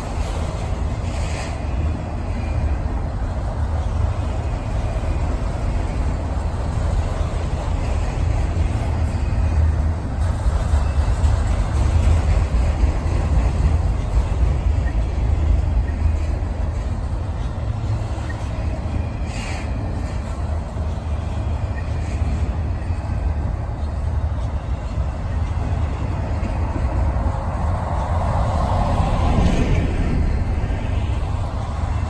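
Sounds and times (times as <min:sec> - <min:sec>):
freight train wheels rolling on rail: 0:00.0 - 0:32.0.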